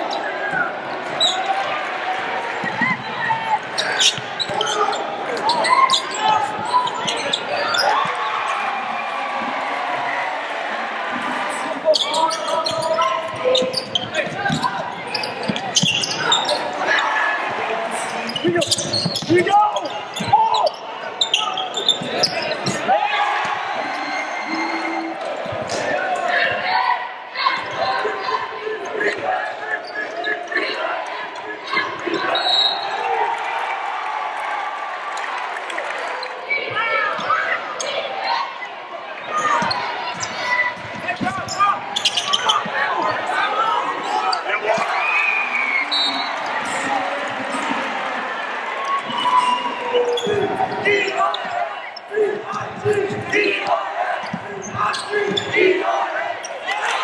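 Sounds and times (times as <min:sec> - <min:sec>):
spectators' voices and shouts: 0:00.0 - 0:57.0.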